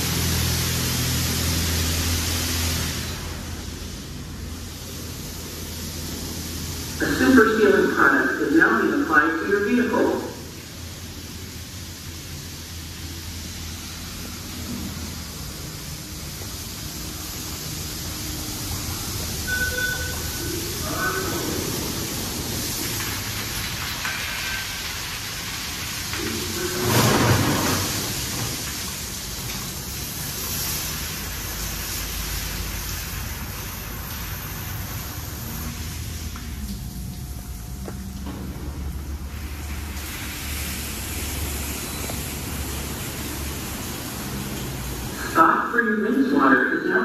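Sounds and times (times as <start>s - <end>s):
hiss of spray on car: 0.0s - 8.4s, 10.3s - 37.0s, 38.3s - 45.7s.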